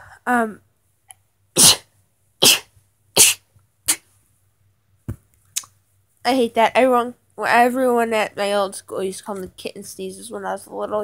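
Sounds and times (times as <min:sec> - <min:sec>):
girl sneezing: 0:01.6 - 0:04.1.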